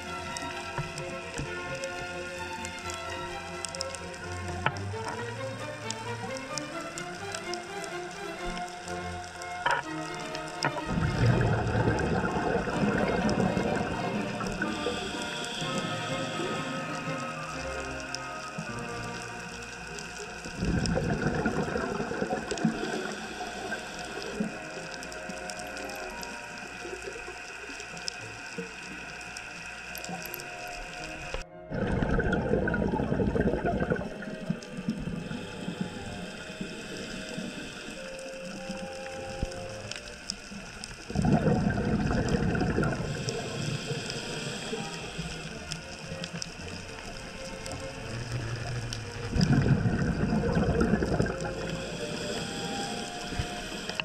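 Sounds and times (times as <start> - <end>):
steady underwater hum: 0.0 - 54.0
diver exhaling bubbles underwater: 10.6 - 17.1, 20.6 - 23.3, 31.7 - 38.1, 41.1 - 45.2, 47.4 - 54.0.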